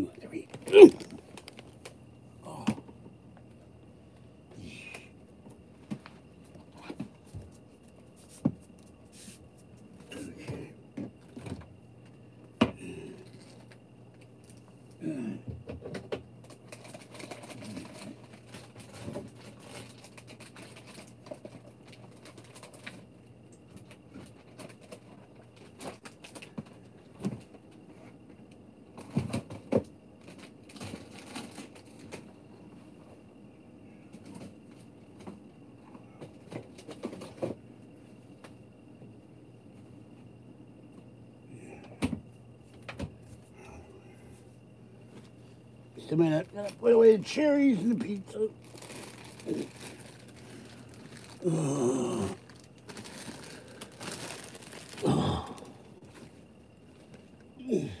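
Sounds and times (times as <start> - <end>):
faint steady hum: 0.0 - 58.0
rustling of bags: 0.2 - 2.6, 16.4 - 23.1, 30.2 - 32.3, 47.5 - 57.9.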